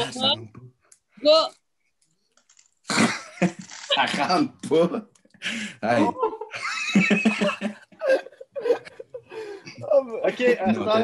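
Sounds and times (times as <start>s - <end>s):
people laughing: 5.9s - 11.0s.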